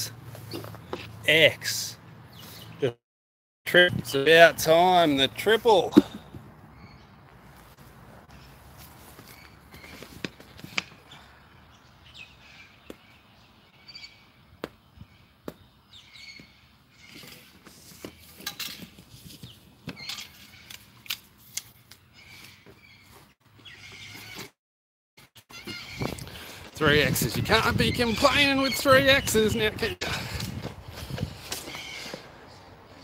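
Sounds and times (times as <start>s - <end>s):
flip-flop footsteps on grass: 5.9s - 6.5s, 7.2s - 11.0s.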